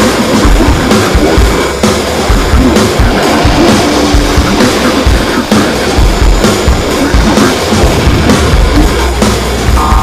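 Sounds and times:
noise rock band music: 0.0s - 10.0s
heavy low drum hits: 0.3s - 10.0s.

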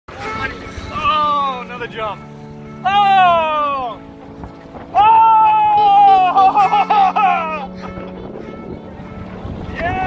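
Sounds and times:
person crying out excitedly: 4.9s - 7.8s
person laughing: 5.8s - 8.2s.

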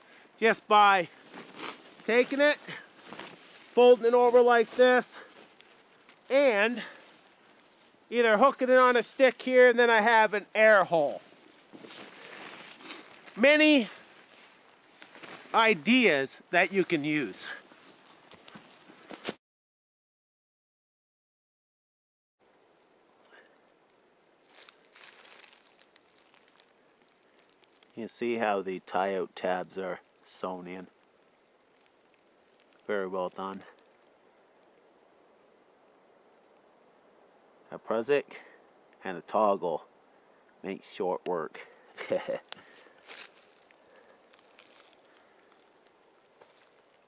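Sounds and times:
faint ticks and crackles: 0.0s - 19.3s, 22.4s - 37.8s, 38.4s - 47.0s
faint handling rustle: 0.0s - 19.4s, 23.4s - 35.0s, 41.6s - 47.0s.

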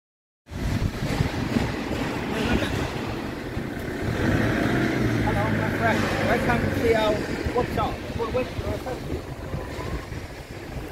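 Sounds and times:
motor vehicle engine rumbling: 0.5s - 10.9s
man's voice: 5.2s - 9.4s.

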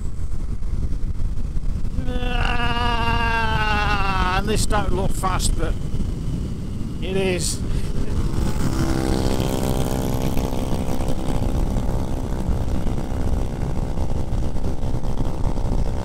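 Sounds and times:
wind noise on microphone: 0.0s - 16.0s
motorcycle engine: 5.7s - 16.0s.

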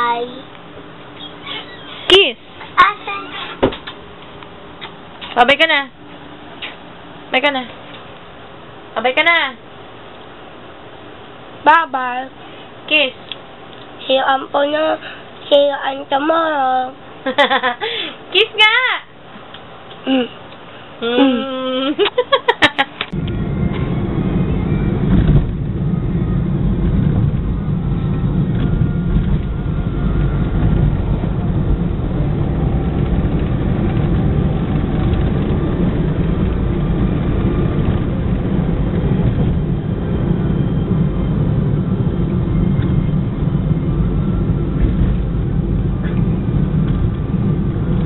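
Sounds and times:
car engine and tyre rumble: 23.0s - 48.0s.

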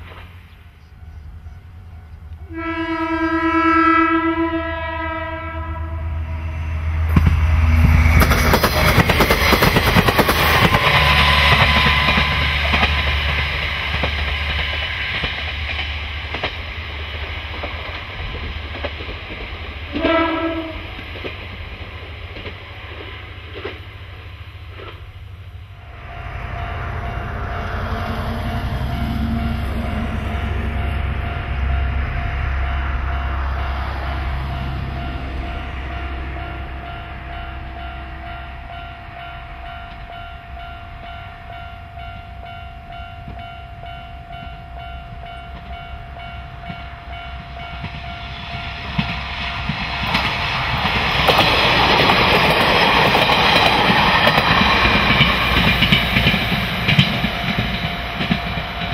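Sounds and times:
railcar engine and wheel noise: 0.0s - 58.9s
train horn blast: 2.4s - 7.9s, 10.6s - 14.1s, 19.9s - 21.0s.

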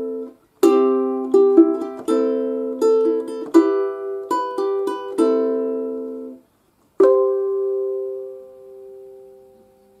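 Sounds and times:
ukulele chord ringing: 0.0s - 6.4s, 7.0s - 10.0s.

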